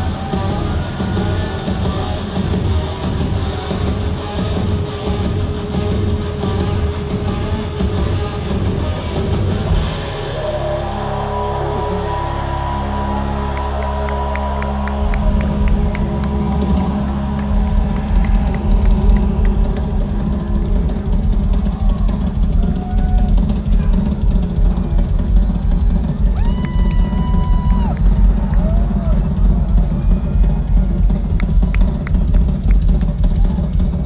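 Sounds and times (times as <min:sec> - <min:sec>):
fast heavy drumming: 0:00.0 - 0:34.0
heavy rock band playing: 0:00.0 - 0:34.0.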